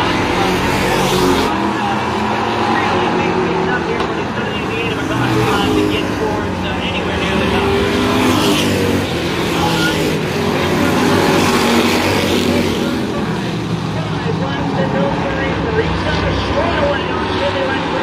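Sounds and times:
race car engines droning: 0.0 - 18.0.

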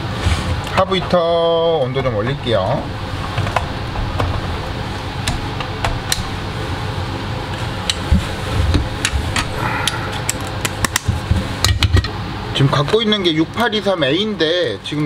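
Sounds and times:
fans blowing air: 0.0 - 15.0.

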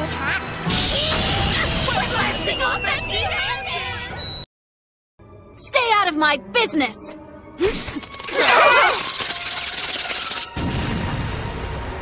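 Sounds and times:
background music: 5.2 - 12.0
crashing explosion blast: 10.5 - 12.0
rumbling blast: 10.5 - 12.0.

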